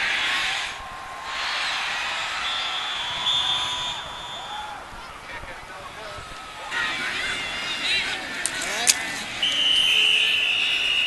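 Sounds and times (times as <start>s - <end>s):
referee's whistle blast: 2.4s - 4.8s, 9.4s - 11.0s.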